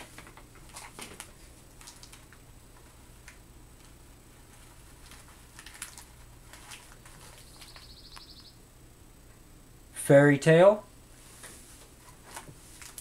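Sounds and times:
cord and paper labels rustling: 0.0 - 8.3, 11.4 - 13.0
low steady hum: 0.0 - 13.0.

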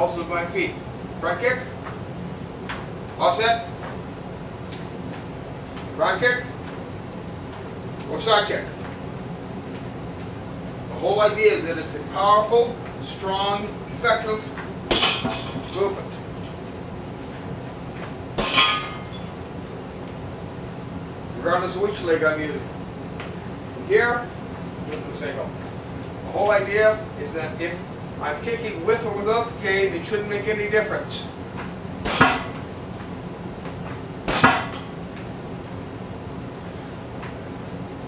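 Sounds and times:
punching bag thump: 32.0 - 32.6, 34.3 - 34.8.

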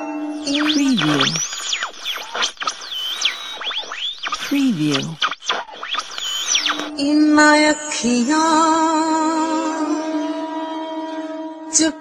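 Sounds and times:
radio tuning whistles: 0.4 - 7.0
radio static hiss: 0.5 - 7.0.

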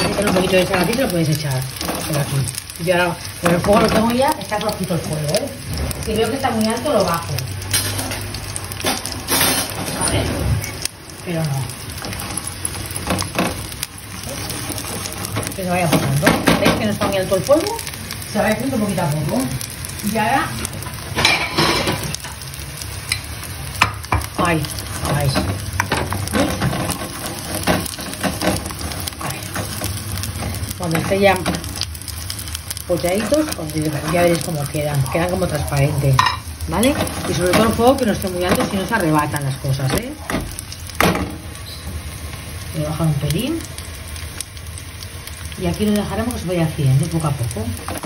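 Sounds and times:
garlic sizzling in a frying pan: 0.0 - 48.0
wooden spoon scraping pan: 12.0 - 17.1, 24.7 - 31.8, 36.3 - 39.0.

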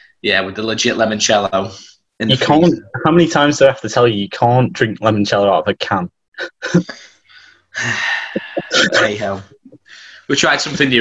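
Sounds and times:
man laughing quietly: 7.8 - 9.7.

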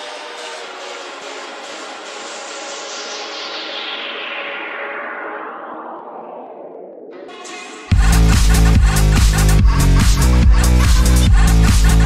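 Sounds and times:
synth noise sweep falling: 2.5 - 9.2.

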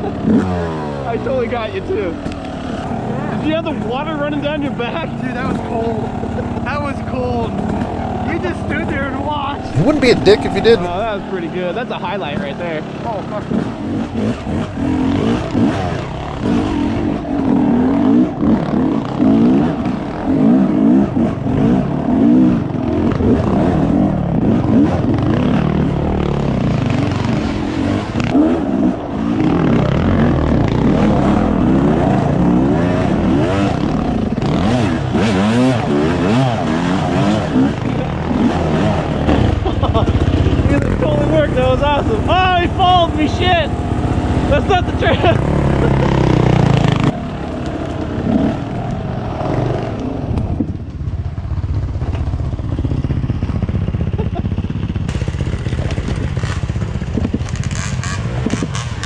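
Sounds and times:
dirt bike engine revving: 0.0 - 50.6, 51.6 - 59.0.

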